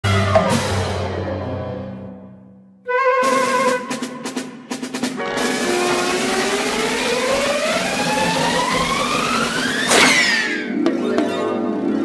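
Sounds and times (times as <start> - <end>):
rushing sound with rising whistle: 5.4 - 10.6.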